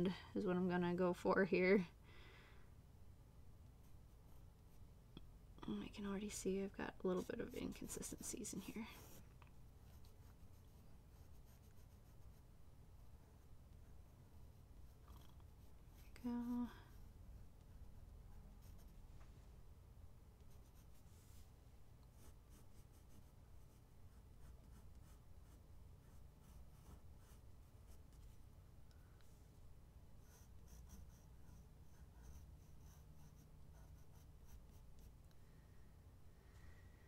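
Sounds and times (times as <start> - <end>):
low steady hum: 0.0 - 37.0
pencil scratching on paper: 6.2 - 12.5, 13.8 - 19.0, 20.4 - 21.4, 22.1 - 28.4, 30.2 - 35.2.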